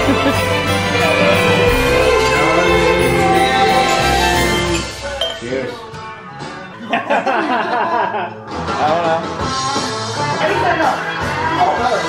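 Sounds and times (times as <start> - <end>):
background music: 0.0 - 12.0
drinking glasses clinking: 0.6 - 5.6.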